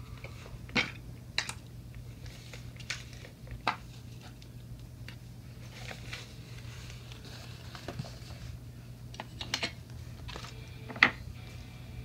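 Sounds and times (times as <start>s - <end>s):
low hum: 9.8s - 12.0s.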